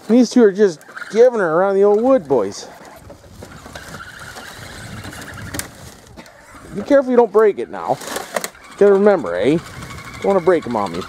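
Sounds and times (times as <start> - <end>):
rc crawler motors whirring: 0.7 - 11.0.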